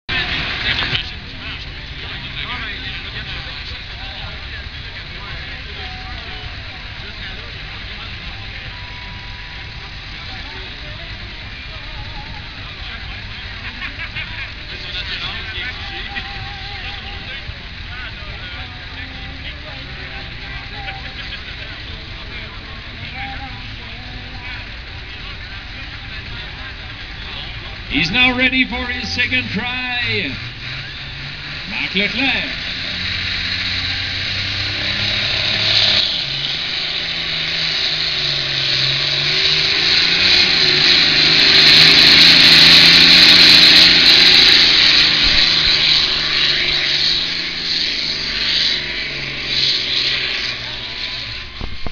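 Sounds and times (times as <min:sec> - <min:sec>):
loud burst of noise: 0:00.0 - 0:51.9
spectators chatting and murmuring: 0:00.0 - 0:51.9
tractors idling rumble: 0:00.0 - 0:51.9.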